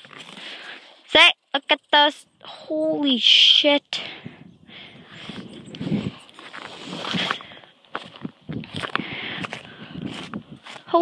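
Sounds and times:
footsteps crunching through snow: 5.1s - 11.0s.

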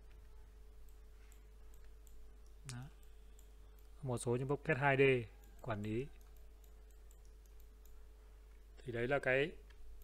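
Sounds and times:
computer mouse clicks: 0.0s - 4.0s, 5.3s - 8.0s
low electrical hum: 0.0s - 10.0s
man speaking: 4.0s - 6.2s.

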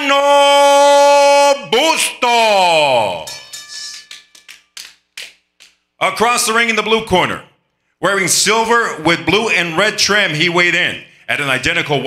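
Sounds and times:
echoing hand claps: 3.7s - 6.0s.

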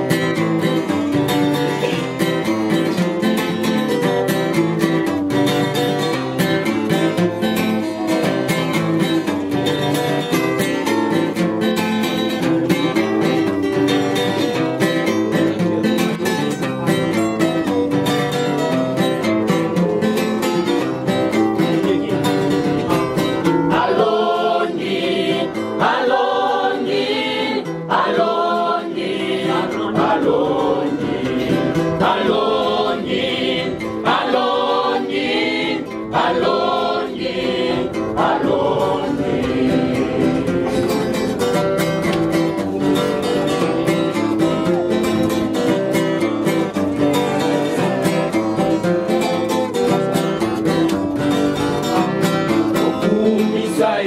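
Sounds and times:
strummed acoustic guitar: 0.0s - 54.0s
young voices singing worship song: 23.6s - 41.0s, 53.0s - 54.0s.

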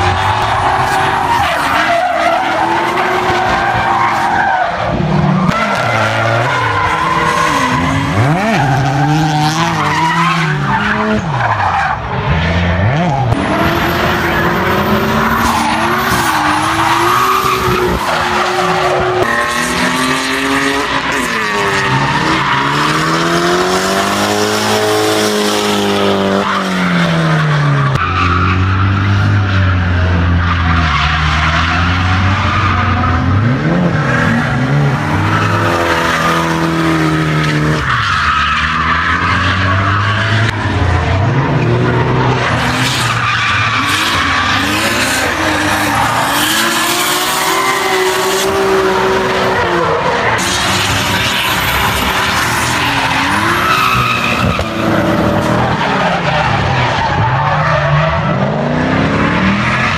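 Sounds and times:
car engines revving: 0.0s - 59.9s.

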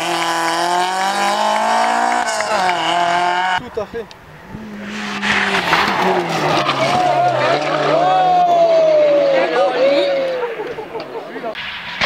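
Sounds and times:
tyre noise on tarmac: 0.0s - 8.9s
rally car engine approaching: 0.0s - 11.0s.

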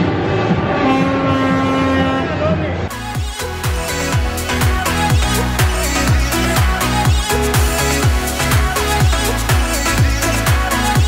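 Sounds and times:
long horn blowing held note: 0.4s - 2.4s.

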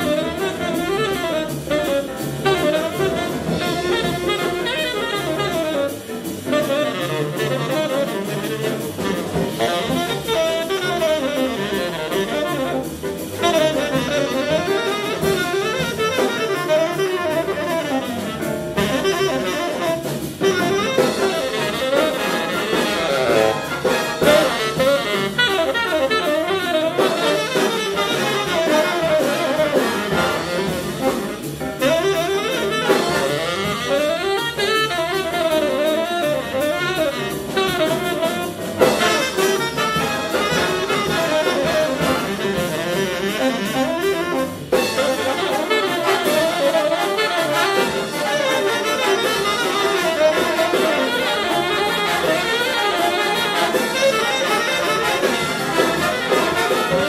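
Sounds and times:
jazz big band playing swing: 0.0s - 57.0s
saxophone solo: 0.0s - 57.0s.

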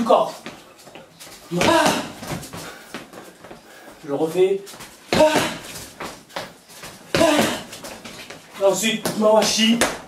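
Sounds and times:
sneakers scuffing on tiled floor: 0.0s - 10.0s.

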